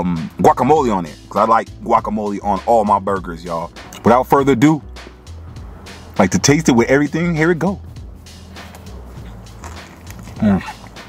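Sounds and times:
background music with low bass: 0.0s - 11.0s
person chewing a burger: 8.7s - 11.0s.

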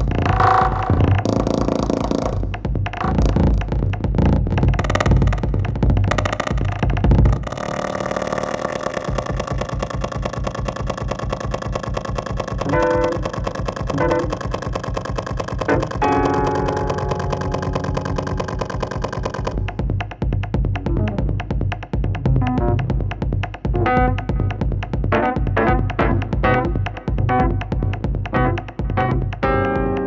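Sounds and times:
fast low electronic pulse: 0.0s - 30.0s
held electronic tones: 4.7s - 19.7s.

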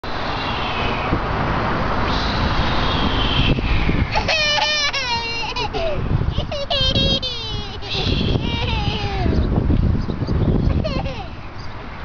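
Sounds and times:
rushing street noise: 0.0s - 12.0s
toddler crying: 4.1s - 9.4s, 10.8s - 11.4s.

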